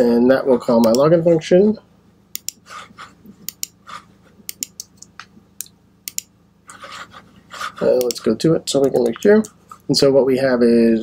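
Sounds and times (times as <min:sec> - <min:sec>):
computer keyboard and mouse clicks: 0:02.4 - 0:02.6, 0:03.4 - 0:03.8, 0:04.5 - 0:06.3, 0:07.9 - 0:09.6.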